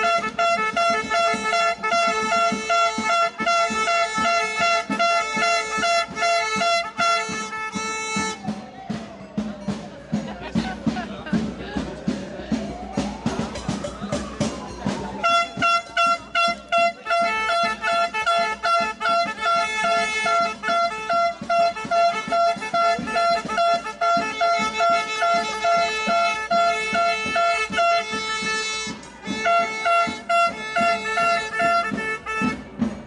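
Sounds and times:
high plastic horn toots: 0.0 - 8.4, 15.2 - 32.8.

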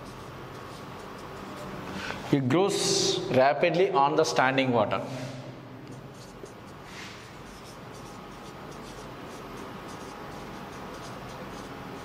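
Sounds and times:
marker writing on whiteboard: 0.0 - 2.2, 5.9 - 12.0
low room hum: 0.0 - 12.0.

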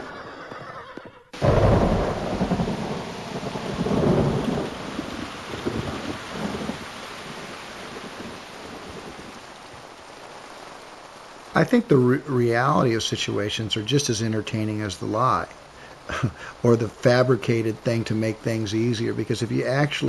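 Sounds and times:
thunder rumbling: 1.4 - 9.6, 11.6 - 20.0
heavy steady rain: 1.4 - 20.0.

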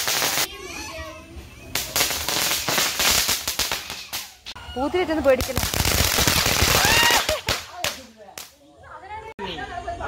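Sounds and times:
firework fountain hissing: 0.0 - 0.6, 1.4 - 8.5.

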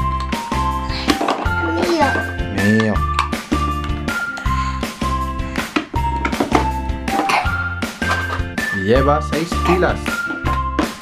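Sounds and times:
upbeat music with bass beat: 1.7 - 11.0.

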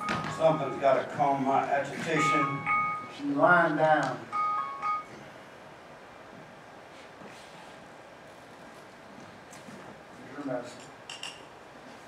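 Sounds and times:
man speaking stage dialogue: 0.4 - 2.7.

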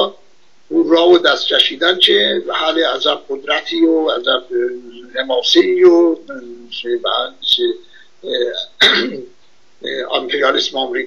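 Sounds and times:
man clearing his throat: 8.8 - 9.3.

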